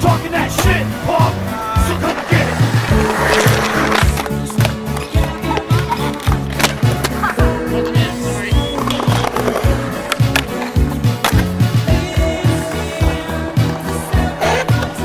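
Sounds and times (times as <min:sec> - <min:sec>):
music with steady beat: 0:00.0 - 0:15.0
skateboard rolling on concrete: 0:00.0 - 0:15.0
skateboard popping and landing: 0:02.0 - 0:07.4, 0:08.7 - 0:12.3.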